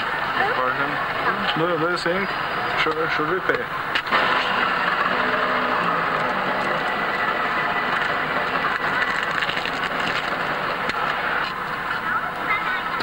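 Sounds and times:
city street traffic: 0:00.0 - 0:13.0.

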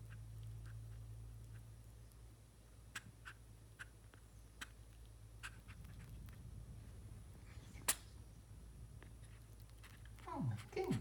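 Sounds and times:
squirrel licking and nibbling fur: 0:00.0 - 0:11.0.

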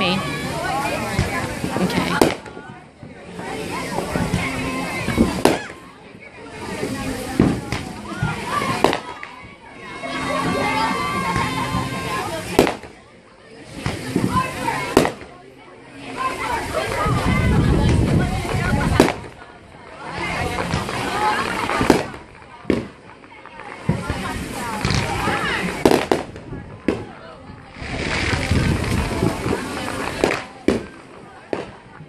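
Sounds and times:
people chattering: 0:00.0 - 0:32.0
fireworks bangs: 0:01.0 - 0:02.7, 0:03.9 - 0:05.8, 0:06.8 - 0:09.5, 0:10.4 - 0:13.0, 0:13.8 - 0:15.4, 0:17.2 - 0:19.4, 0:20.4 - 0:32.0.

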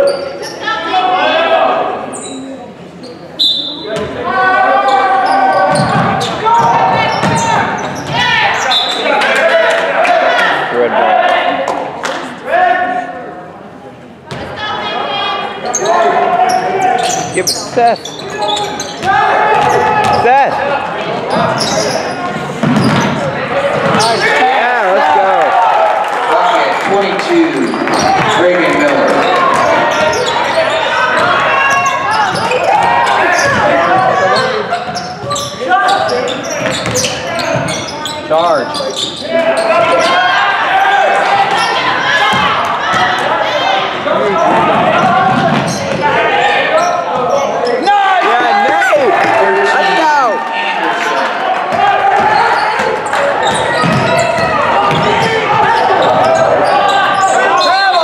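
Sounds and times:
people shouting and chattering: 0:00.0 - 0:58.0
basketball bouncing on wooden floor: 0:53.5 - 0:55.2.

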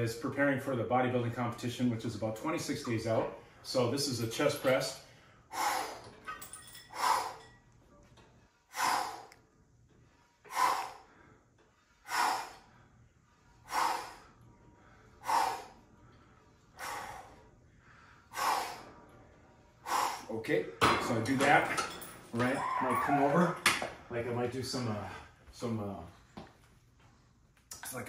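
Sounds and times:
man breathing forcefully: 0:05.2 - 0:07.6, 0:08.7 - 0:19.1, 0:19.7 - 0:20.3.

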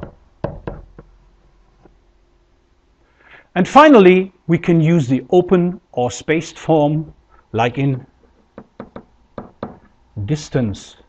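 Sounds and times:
pen tapping on whiteboard: 0:08.3 - 0:09.9.

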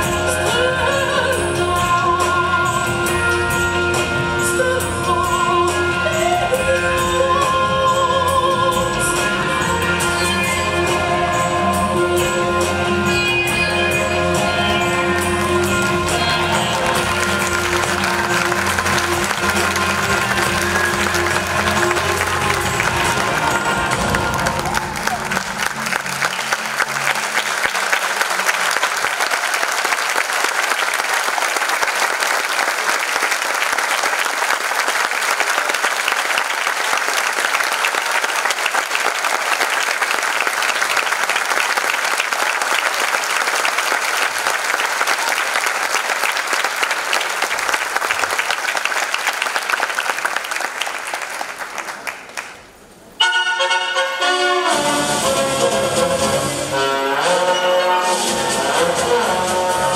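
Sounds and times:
stage music: 0:00.0 - 0:59.9
audience applause: 0:15.2 - 0:53.0.

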